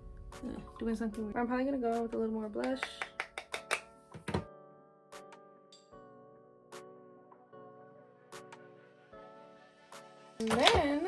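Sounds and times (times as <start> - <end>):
quiet background music: 0.0 - 11.0
makeup items clicking and tapping: 2.6 - 4.5, 10.4 - 11.0.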